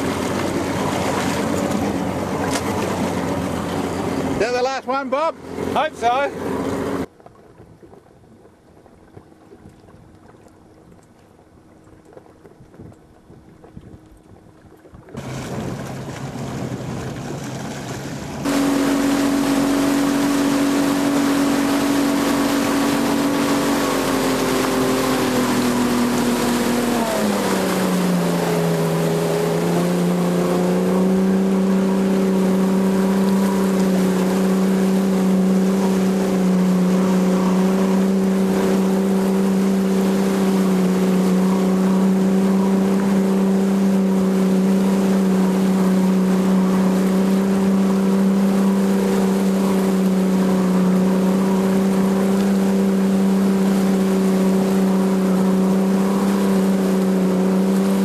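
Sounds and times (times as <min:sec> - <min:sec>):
motorboat engine droning: 0:00.0 - 0:58.0
water noise: 0:00.0 - 0:58.0
wind: 0:00.0 - 0:58.0.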